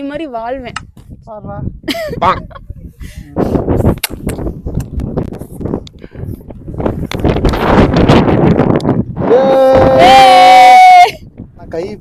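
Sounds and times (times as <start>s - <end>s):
wind buffeting microphone: 0.0s - 12.0s
person yelling in celebration: 9.2s - 11.2s.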